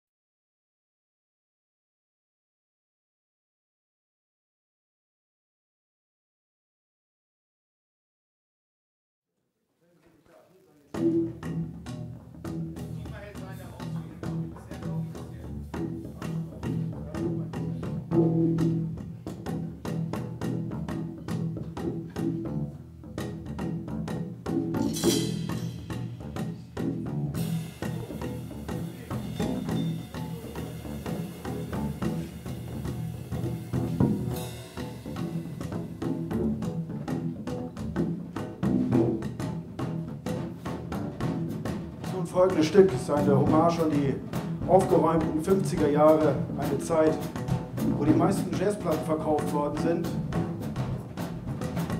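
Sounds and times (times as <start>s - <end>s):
drums and percussion: 10.9s - 51.9s
plucked double bass groove: 10.9s - 51.9s.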